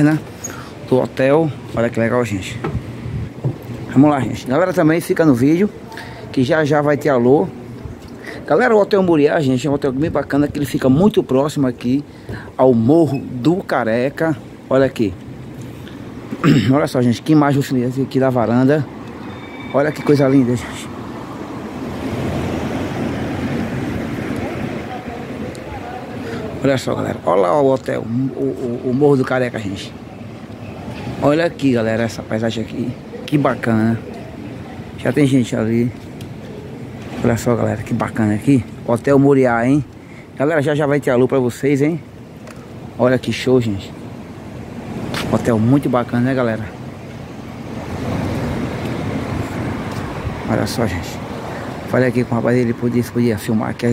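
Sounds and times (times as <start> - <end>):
low rumbling outdoor noise: 0.0 - 53.9
vehicle passing road noise: 14.4 - 16.4, 17.1 - 35.1, 43.9 - 53.9.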